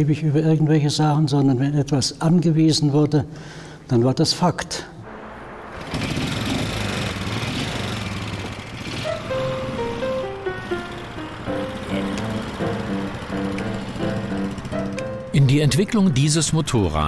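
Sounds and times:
motorcycle engine running: 5.7s - 15.6s
music: 8.9s - 17.0s.

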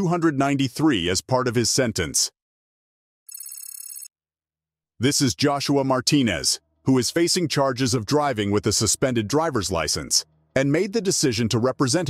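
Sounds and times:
high-pitched trilling ring: 3.3s - 4.1s.

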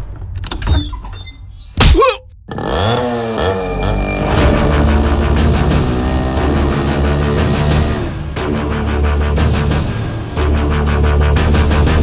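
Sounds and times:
motorcycle engine revving: 2.5s - 9.0s.

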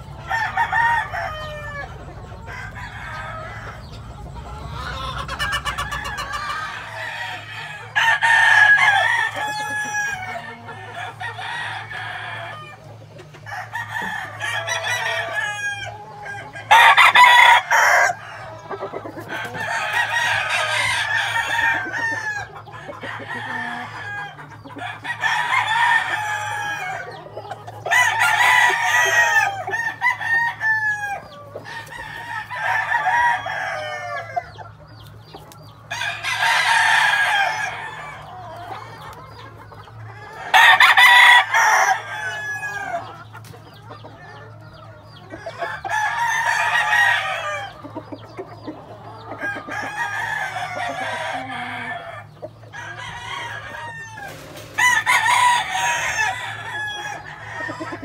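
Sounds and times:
roosters crowing: 0.0s - 58.0s.

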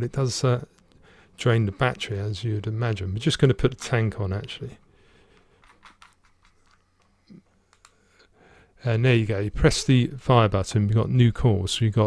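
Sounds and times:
metal threads clicking and scraping: 5.5s - 7.1s.

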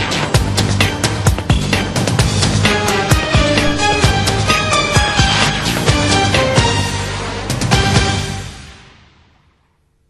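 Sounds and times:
closing theme music: 2.6s - 8.0s.

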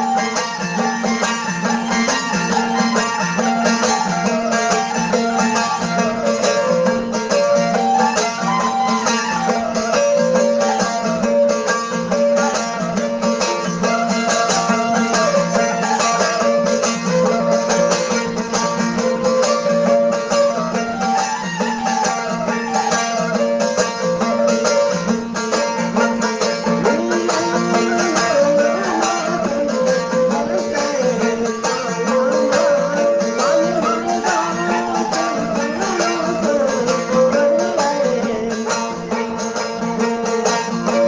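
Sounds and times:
bowed fiddle melody: 0.0s - 41.0s
plucked string drone: 24.2s - 41.0s.

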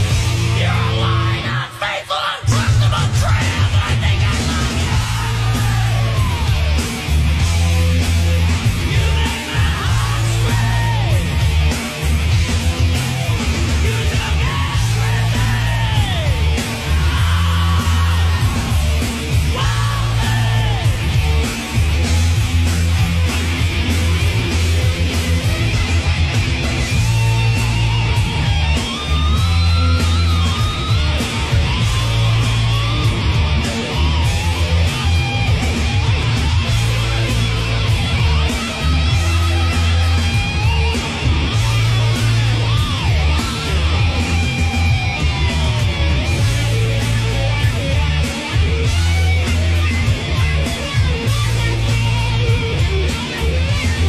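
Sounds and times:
steady drum beat: 0.0s - 1.4s, 2.5s - 54.0s
bending guitar line: 0.0s - 1.6s, 2.5s - 54.0s
distorted electric guitar: 0.0s - 54.0s
hard rock music: 0.0s - 54.0s.

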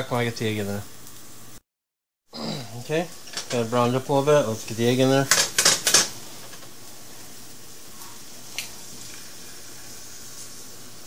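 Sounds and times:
food sizzling in oil: 2.8s - 11.0s.

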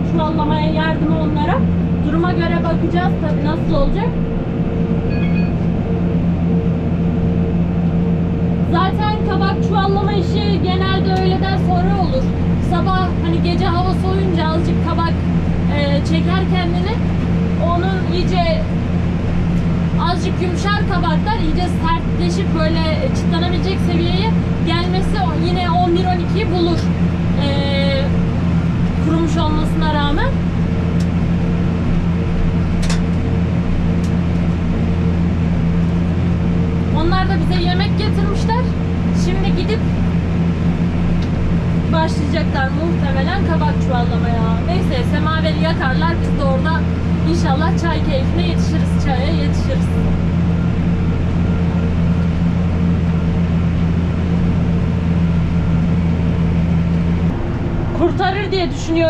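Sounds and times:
tractor engine running under load: 0.0s - 59.0s.

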